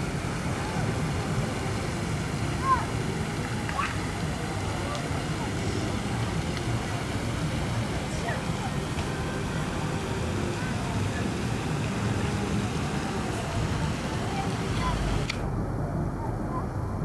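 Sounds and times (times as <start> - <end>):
faint voices of people: 0.0 - 17.0
low outdoor rumble: 0.0 - 17.0.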